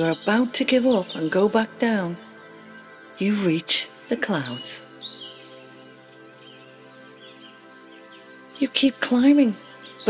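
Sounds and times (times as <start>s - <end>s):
soft music of held tones: 0.0s - 10.0s.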